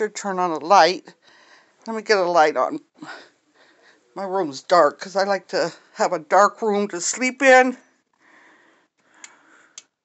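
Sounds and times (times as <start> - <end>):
soft breathy noise: 1.1 - 1.9, 3.0 - 4.2, 7.8 - 10.0.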